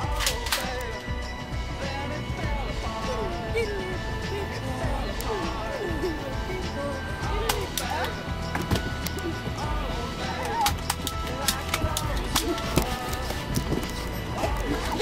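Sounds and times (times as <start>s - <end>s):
background music: 0.0s - 15.0s
voices: 0.0s - 15.0s.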